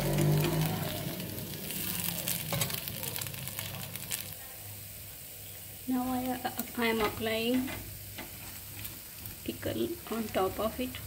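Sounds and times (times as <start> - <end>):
dosa sizzling in a frying pan: 0.0 - 11.0.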